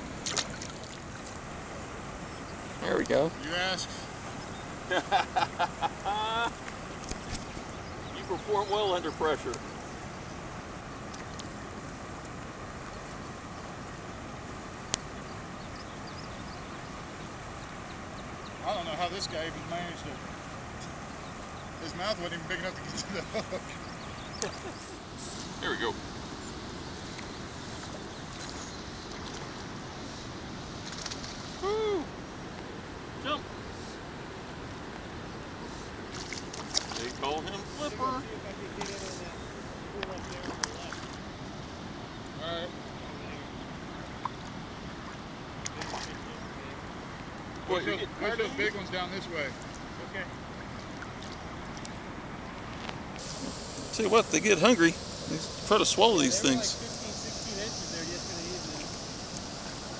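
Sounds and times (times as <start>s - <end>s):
river air rushing on microphone: 0.0s - 59.9s
wind: 0.0s - 59.9s
high hiss: 18.6s - 36.1s, 52.9s - 59.9s
loud rising and falling call: 31.5s - 32.2s.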